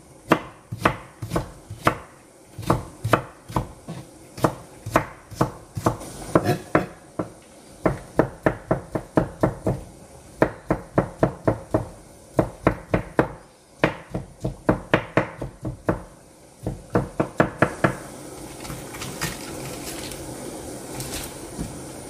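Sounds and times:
low steady hiss: 0.0s - 22.0s
knife chopping on cutting board: 0.3s - 18.0s.

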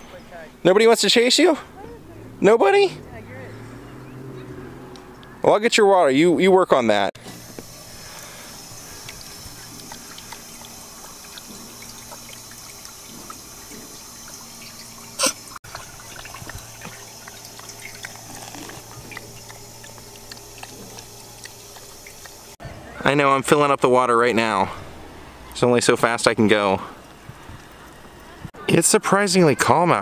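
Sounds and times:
dog lapping water: 7.4s - 22.6s
water trickling into metal bowl: 7.4s - 22.6s.

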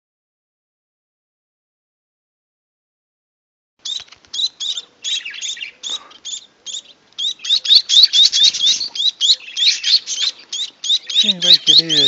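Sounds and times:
fledgling finches begging calls: 3.8s - 12.0s.

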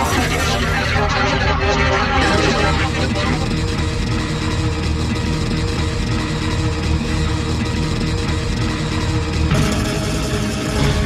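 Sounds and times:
rock music with guitar: 0.0s - 11.0s.

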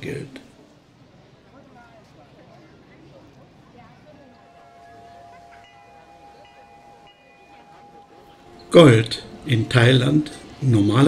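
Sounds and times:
low bell tone ringing: 4.2s - 11.0s.

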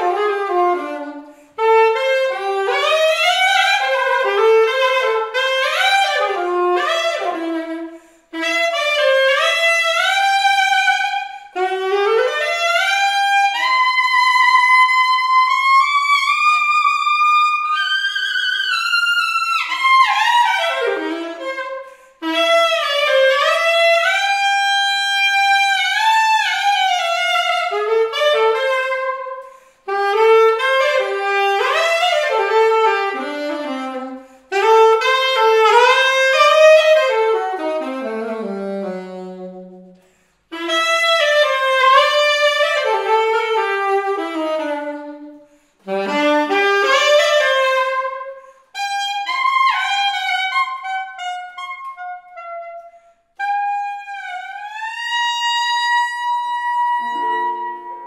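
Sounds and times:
solo saxophone melody: 0.0s - 58.0s.

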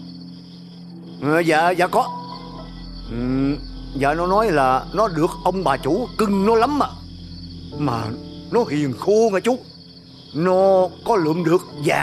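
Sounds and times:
background music score: 0.0s - 12.0s
crickets chirring: 0.0s - 12.0s.

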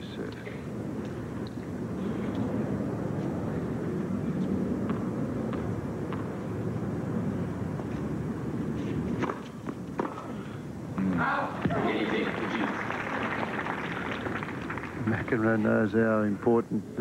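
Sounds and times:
tennis ball bouncing on court: 4.8s - 6.4s
stadium murmur: 11.0s - 15.6s.

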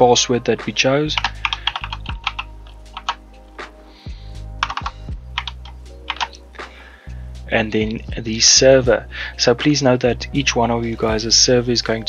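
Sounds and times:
keyboard keys clicking: 1.2s - 3.2s, 4.6s - 6.4s.

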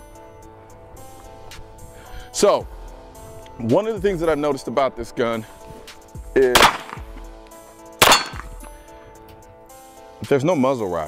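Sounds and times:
pistol shot: 6.5s - 7.2s, 8.0s - 8.7s.

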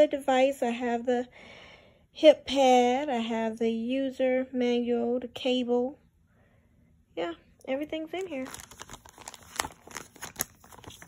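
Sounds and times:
plastic packaging crinkling: 7.9s - 11.0s.

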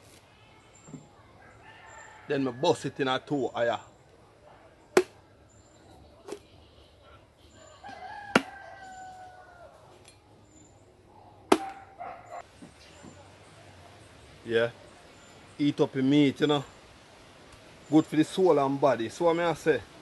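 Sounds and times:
rooster crowing: 1.4s - 2.9s, 7.5s - 9.9s
machete chopping coconut: 5.0s - 5.2s, 8.3s - 8.6s, 11.5s - 11.8s.

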